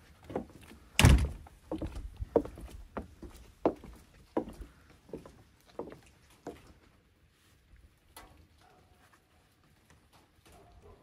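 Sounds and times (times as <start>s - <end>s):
footsteps on wooden deck: 0.0s - 7.1s
door swinging open thump: 1.0s - 1.4s.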